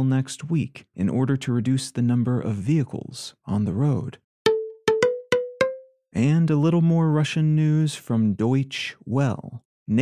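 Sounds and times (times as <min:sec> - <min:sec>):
cowbell-like struck notes: 0:04.5 - 0:05.9.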